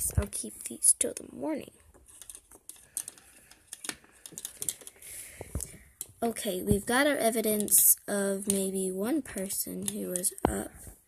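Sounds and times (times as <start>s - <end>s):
plastic toys clicking on countertop: 2.0s - 6.2s, 7.3s - 8.7s, 9.4s - 10.7s.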